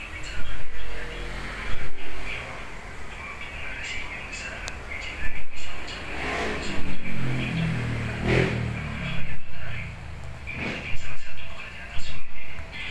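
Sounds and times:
background noise: 0.0 - 12.9
vehicle engine revving: 0.7 - 3.0, 5.6 - 11.2.

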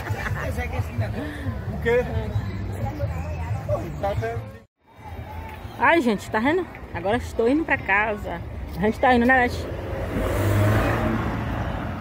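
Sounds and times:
small car passing by: 9.4 - 12.0.

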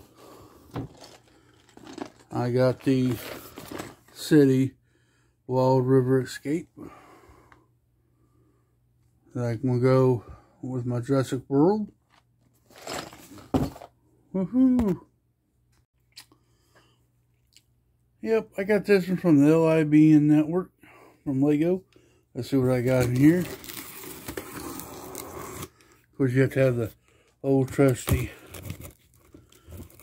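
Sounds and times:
cardboard boxes being handled: 3.0 - 4.1, 12.6 - 13.9
cardboard box thunk: 12.8 - 13.9.

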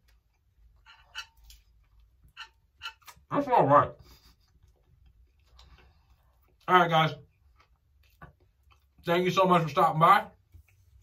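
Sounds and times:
person chewing food: 4.1 - 6.7, 7.3 - 9.0.

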